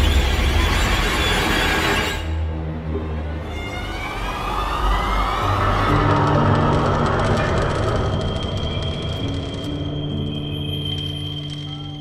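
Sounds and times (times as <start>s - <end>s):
dark horror film score: 0.0s - 12.0s.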